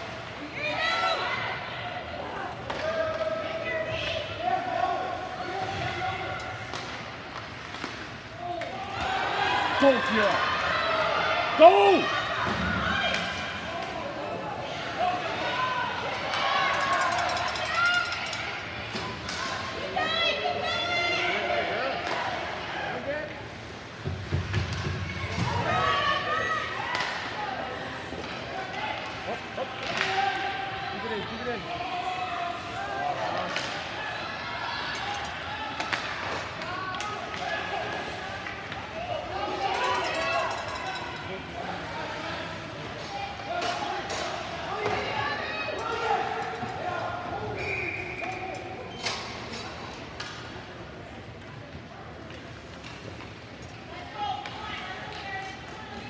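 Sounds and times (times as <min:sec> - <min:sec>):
hockey sticks and puck clacking: 0:06.6 - 0:09.1, 0:16.2 - 0:19.6, 0:29.8 - 0:30.2, 0:35.0 - 0:37.6, 0:38.4 - 0:41.3.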